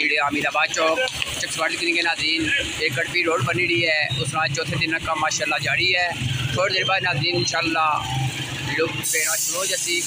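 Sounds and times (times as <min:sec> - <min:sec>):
man talking: 0:00.0 - 0:10.0
street traffic: 0:00.0 - 0:10.0.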